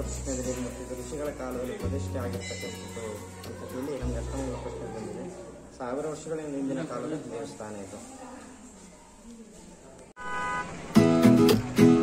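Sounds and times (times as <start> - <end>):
vehicle horn: 10.2 - 11.0.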